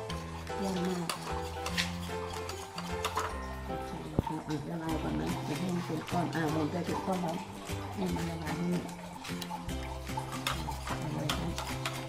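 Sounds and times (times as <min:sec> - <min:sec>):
background music sustained notes: 0:00.0 - 0:12.0
metal spoon scraping ceramic bowl: 0:00.0 - 0:12.0
spoon clinking against bowl: 0:00.4 - 0:04.6, 0:05.4 - 0:12.0.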